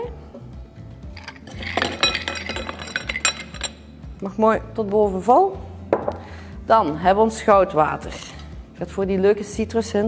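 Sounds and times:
ice cubes clinking in glass: 1.2s - 3.8s.

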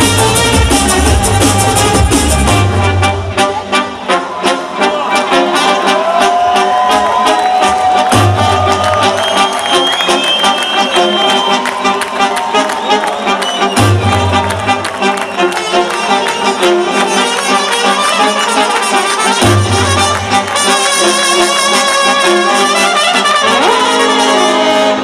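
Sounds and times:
deep bass: 0.0s - 3.4s
drum and bass music: 0.0s - 10.0s, 10.6s - 25.0s.

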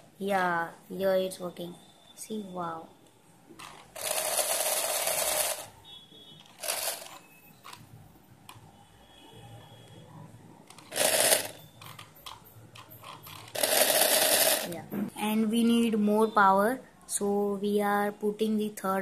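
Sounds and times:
small electric motor whirring: 4.0s - 5.7s, 6.6s - 7.2s, 10.8s - 11.6s, 13.3s - 14.7s.

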